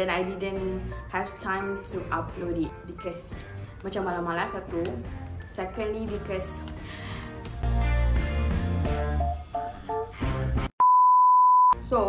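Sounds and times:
censor bleep: 10.8s - 11.8s.

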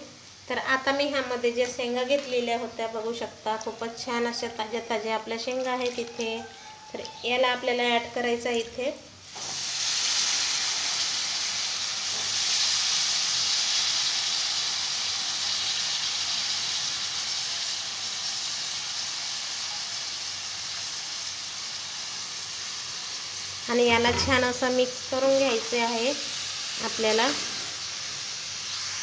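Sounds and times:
beans sizzling in hot pan: 0.0s - 29.0s.

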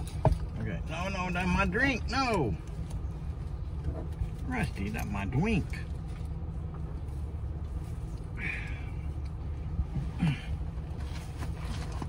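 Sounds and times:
minivan engine idling: 0.0s - 12.0s.

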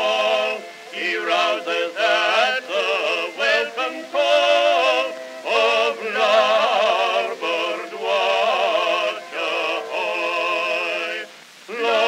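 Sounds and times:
two men singing in duet: 0.0s - 12.0s.

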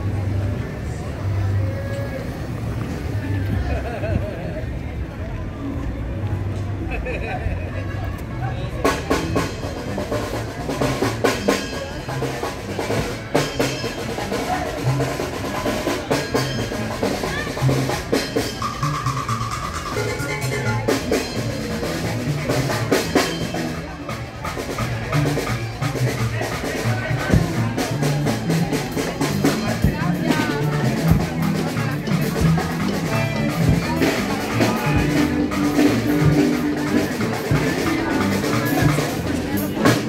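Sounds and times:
people talking: 0.0s - 40.0s
lively music with steady beat: 8.8s - 40.0s.

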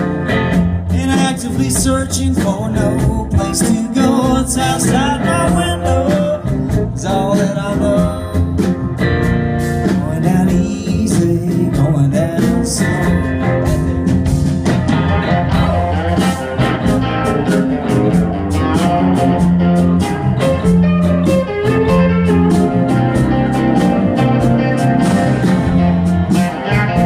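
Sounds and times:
bass guitar: 0.0s - 27.0s
electric guitar: 0.0s - 27.0s
pedal steel guitar: 0.0s - 27.0s
steady drum beat: 0.0s - 27.0s.

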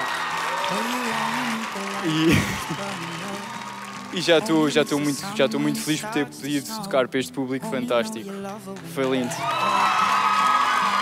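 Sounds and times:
audience applauding: 0.0s - 6.2s, 8.8s - 11.0s
soft background music: 4.1s - 9.4s.

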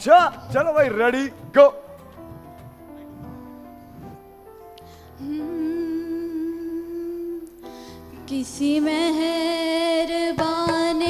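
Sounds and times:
woman singing into a microphone: 5.2s - 11.0s.

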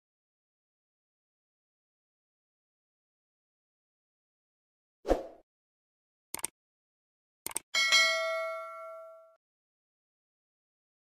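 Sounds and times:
notification bell chime: 7.8s - 9.4s.

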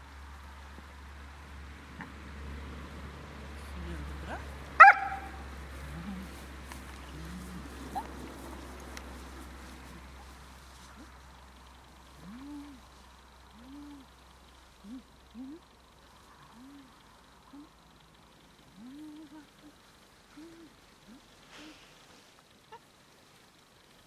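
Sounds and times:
dog yipping: 4.8s - 5.4s.

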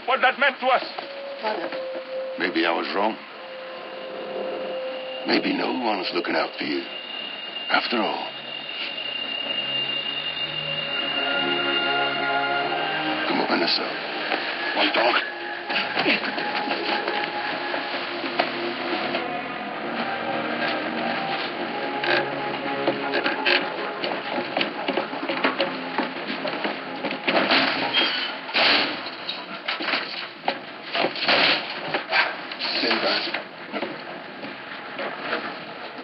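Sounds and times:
voices: 0.0s - 25.0s
film music: 0.0s - 29.2s
knocks and clatter: 22.0s - 32.1s.

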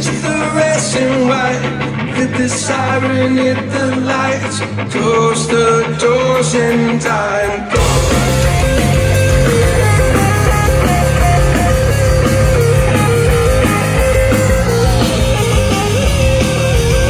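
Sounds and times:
bass guitar: 0.0s - 17.0s
distorted electric guitars: 0.0s - 17.0s
drums: 0.0s - 17.0s
lead guitar high notes: 7.5s - 17.0s.

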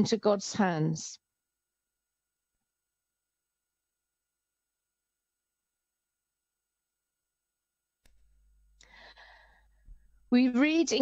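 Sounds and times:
woman speaking: 0.0s - 1.2s, 10.3s - 11.0s
woman breathing in: 8.8s - 10.2s.

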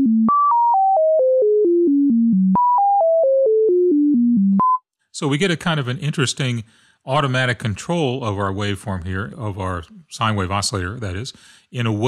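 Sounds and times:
pure tone stepping down in pitch: 0.0s - 4.8s.

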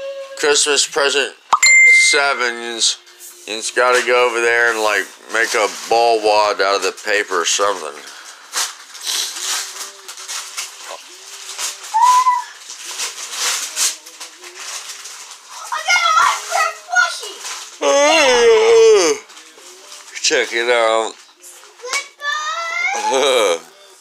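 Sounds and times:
wrapping paper crinkling and tearing: 3.7s - 24.0s.

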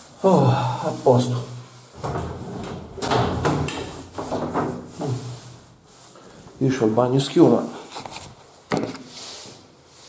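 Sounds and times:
fitting sliding open: 1.9s - 6.4s
sharp knocks and rattles: 2.0s - 5.5s.

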